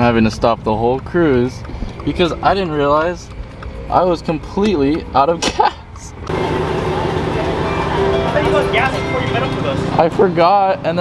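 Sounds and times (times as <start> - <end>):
car engines idling: 0.0 - 11.0.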